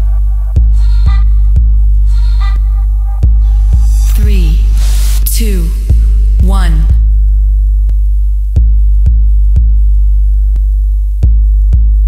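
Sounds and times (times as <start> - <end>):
sharp bass hits: 0.0 - 10.0
sub-bass drone: 0.0 - 12.0.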